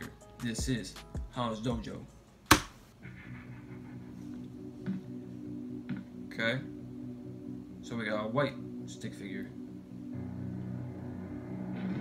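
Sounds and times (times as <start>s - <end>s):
low-pitched musical drone: 3.0s - 12.0s.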